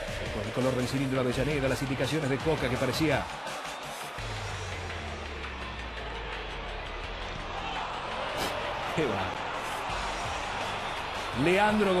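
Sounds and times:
low background music: 0.0s - 12.0s
stadium crowd noise: 0.0s - 12.0s.

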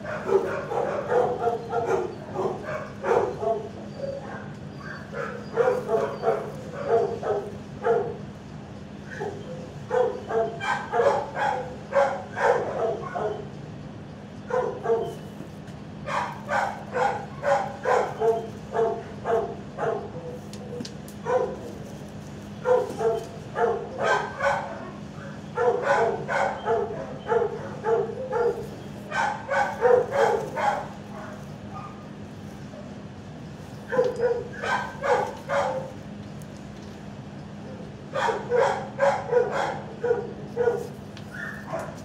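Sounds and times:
dogs barking: 0.0s - 13.6s, 14.2s - 36.7s, 37.4s - 42.0s
steady low hum: 0.0s - 42.0s.

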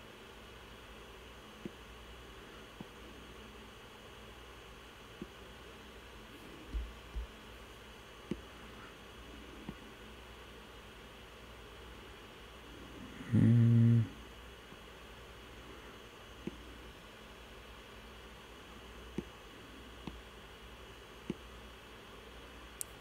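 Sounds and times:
man humming: 13.0s - 14.2s.

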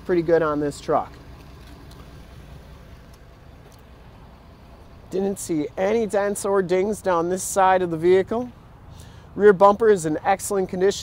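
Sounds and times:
engine idling rumble: 0.0s - 11.0s.

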